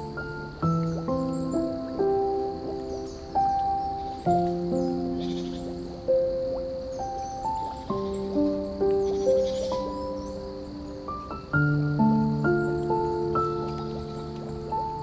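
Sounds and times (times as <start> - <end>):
soft piano music: 0.0 - 15.0
water flowing hiss: 0.0 - 15.0.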